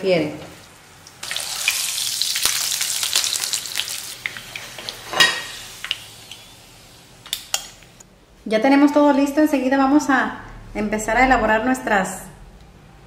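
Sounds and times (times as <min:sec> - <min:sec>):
tortilla sizzling in oil: 0:00.8 - 0:08.0.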